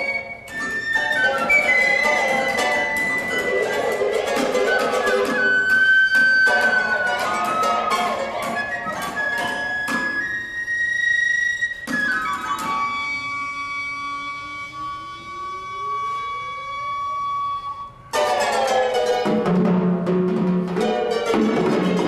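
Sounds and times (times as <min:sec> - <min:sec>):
held flute notes: 0:00.0 - 0:18.8
full ensemble entry: 0:00.0 - 0:22.0.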